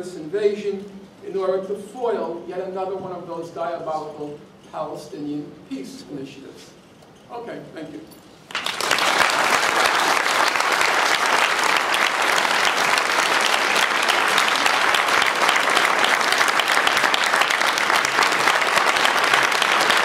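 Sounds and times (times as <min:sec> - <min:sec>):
audience applauding: 0:08.5 - 0:20.0.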